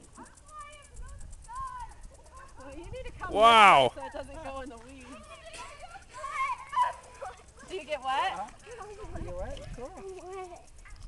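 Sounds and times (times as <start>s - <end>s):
children shouting and squealing: 0.2s - 3.3s, 5.0s - 11.0s.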